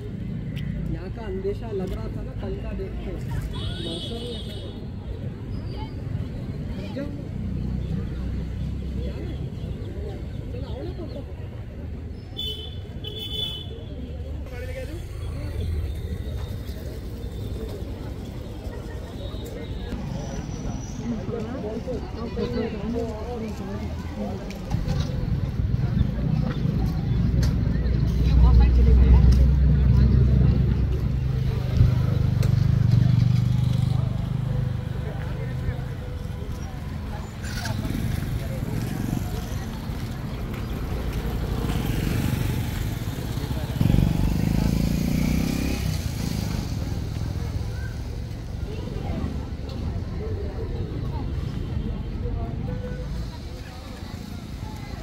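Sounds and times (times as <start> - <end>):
people's voices in background: 0.0 - 55.0.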